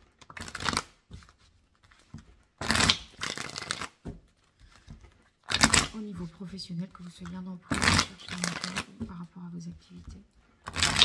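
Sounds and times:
cards shuffled by hand: 0.0s - 11.0s.

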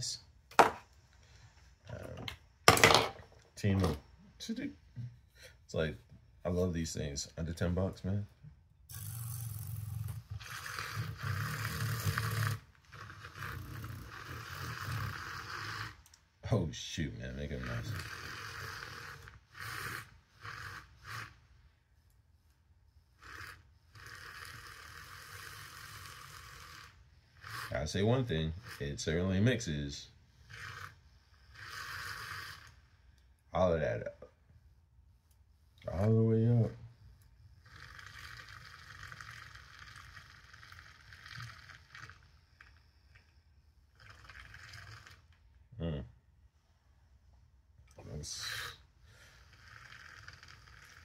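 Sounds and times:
milk frother whirring: 8.9s - 16.6s, 17.3s - 33.4s, 35.7s - 45.5s, 48.1s - 51.0s.

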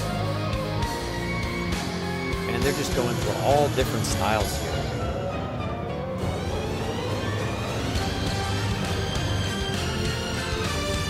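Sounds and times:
symphonic metal band playing: 1.5s - 11.0s.

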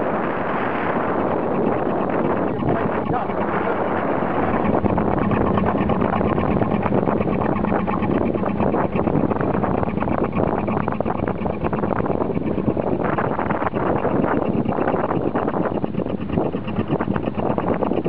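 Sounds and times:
boat engine running: 0.0s - 18.0s
water washing against hull: 0.0s - 18.0s
wind buffeting microphone: 0.0s - 18.0s.

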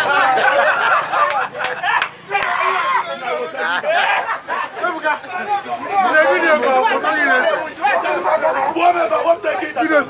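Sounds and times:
several voices talking loudly: 0.0s - 10.0s.

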